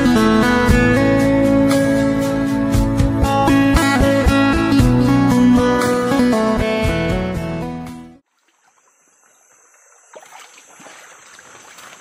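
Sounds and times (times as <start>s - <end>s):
stream water trickling: 8.2s - 12.0s.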